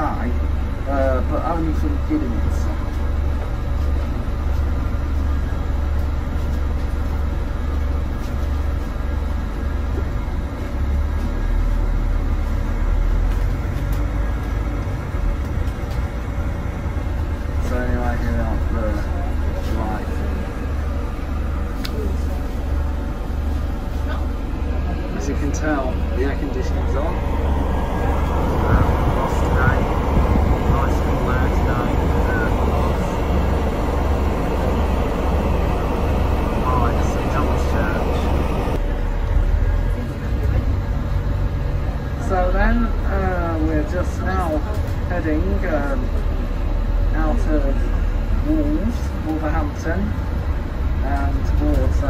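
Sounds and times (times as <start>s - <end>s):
bus engine droning: 0.0s - 52.0s.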